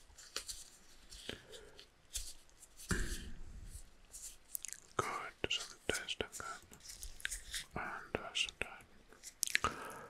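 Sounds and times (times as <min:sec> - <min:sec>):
close-mic whispering: 0:04.6 - 0:10.0.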